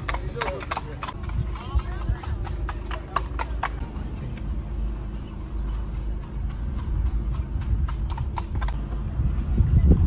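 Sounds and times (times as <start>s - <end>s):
horse hooves clip-clopping on tarmac: 0.0s - 10.0s
steady low rumble: 1.0s - 10.0s.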